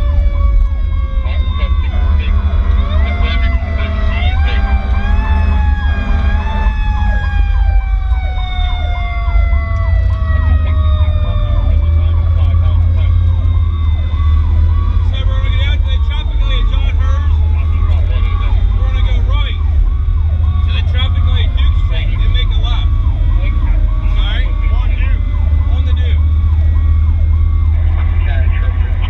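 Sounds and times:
engine and road rumble: 0.0s - 29.0s
siren winding down: 0.0s - 29.0s
siren yelp: 0.0s - 29.0s.

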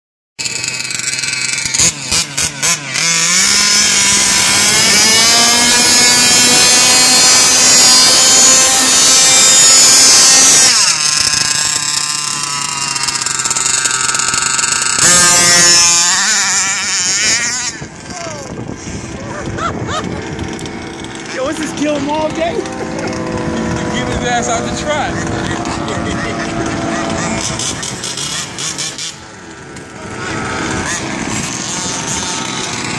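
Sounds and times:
small two-stroke engine revving: 0.4s - 32.9s.

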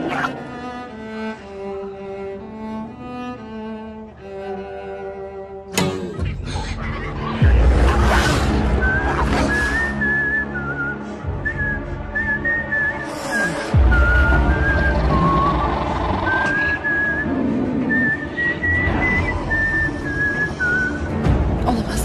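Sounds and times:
orchestral film score: 0.0s - 22.0s
person whistling a tune: 8.7s - 21.2s.

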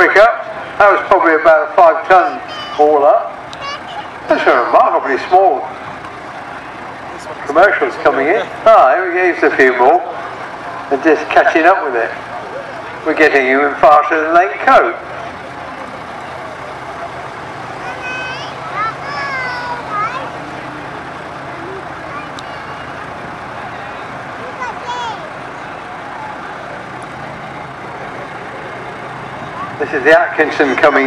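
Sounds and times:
diesel engines running slowly: 0.0s - 31.0s
outdoor background noise: 0.0s - 31.0s
nearby voices: 15.2s - 23.3s.

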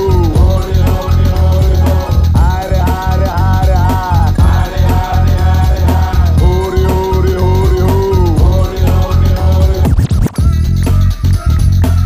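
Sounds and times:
dj music with heavy beat: 0.0s - 12.0s
turntable scratching: 7.8s - 12.0s.

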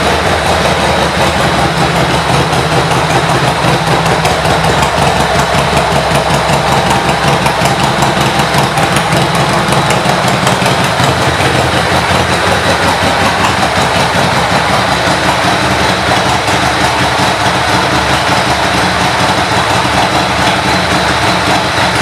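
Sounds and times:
motorcycle engine idling: 0.0s - 22.0s.

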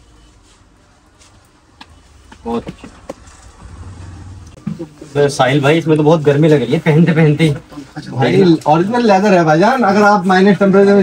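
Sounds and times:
low rumble: 3.2s - 4.6s.

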